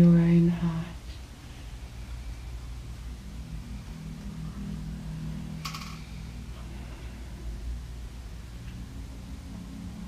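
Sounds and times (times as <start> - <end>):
faint drone: 0.0 - 10.0
room hum: 0.0 - 10.0.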